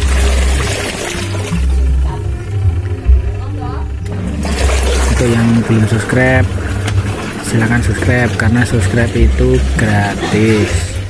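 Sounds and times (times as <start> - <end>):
washing machine churning: 0.0 - 11.0.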